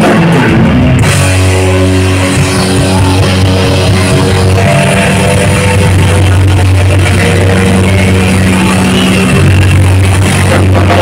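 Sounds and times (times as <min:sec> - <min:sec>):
heavy metal band playing: 0:00.0 - 0:11.0
sustained low bass notes: 0:00.0 - 0:11.0.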